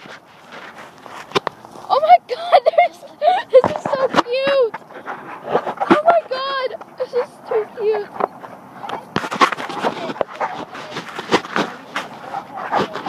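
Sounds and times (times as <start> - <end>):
ducks quacking: 1.7 - 11.0, 11.6 - 13.0.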